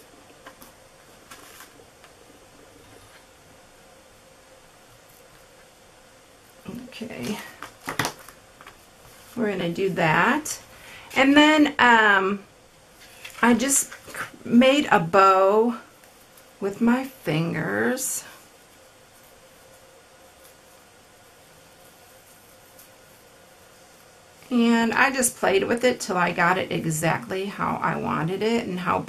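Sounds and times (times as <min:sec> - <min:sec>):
room tone hiss: 0:00.0 - 0:29.0.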